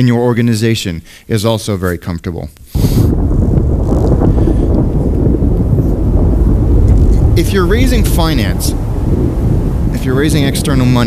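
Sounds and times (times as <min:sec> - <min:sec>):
wind rumbling: 0:02.6 - 0:11.0
thunder: 0:02.8 - 0:11.0.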